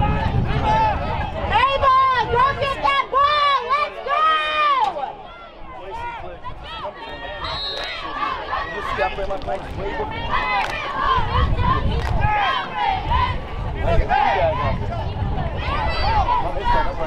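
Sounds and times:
spectators shouting and cheering: 0:00.0 - 0:17.0.

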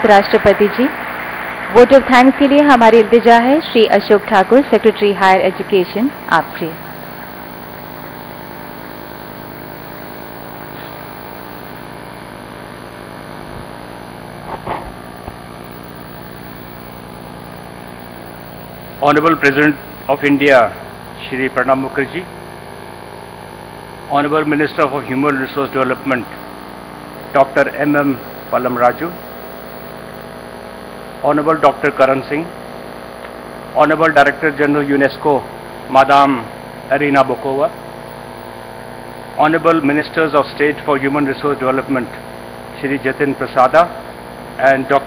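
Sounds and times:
faint hiss: 0:00.0 - 0:12.2, 0:14.4 - 0:21.3, 0:24.4 - 0:30.4
hall room tone hum: 0:00.0 - 0:12.3, 0:13.4 - 0:22.3, 0:24.1 - 0:30.5.

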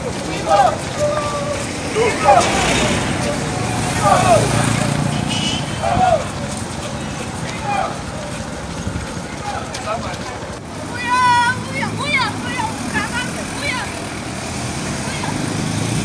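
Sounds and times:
motorcycle engine rumble: 0:00.0 - 0:10.8
runners shouting: 0:00.0 - 0:16.0
street traffic: 0:00.0 - 0:16.0.

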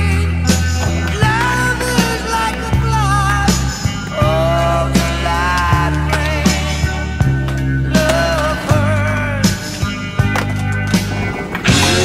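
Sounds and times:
rock music: 0:00.0 - 0:12.0
skateboard clacking on pavement: 0:00.4 - 0:12.0.

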